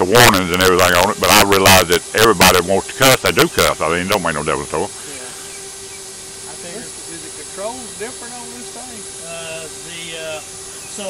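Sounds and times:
man speaking indistinctly: 0:00.0 - 0:05.4, 0:06.5 - 0:11.0
background hiss: 0:00.0 - 0:11.0
steady hum: 0:00.0 - 0:11.0.

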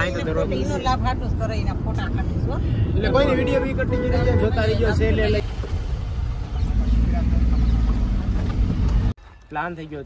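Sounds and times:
road and wind noise in car: 0:00.0 - 0:10.0.

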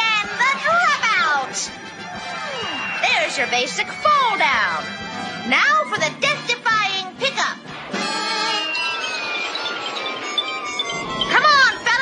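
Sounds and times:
falling whistle: 0:01.9 - 0:04.4, 0:08.0 - 0:12.0.

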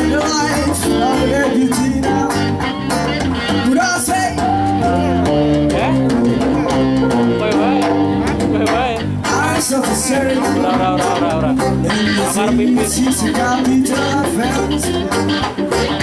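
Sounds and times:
bass guitar: 0:00.0 - 0:16.0
djembe hand drum: 0:00.0 - 0:16.0
electric guitars: 0:00.0 - 0:16.0
electronic keyboard: 0:00.0 - 0:16.0.

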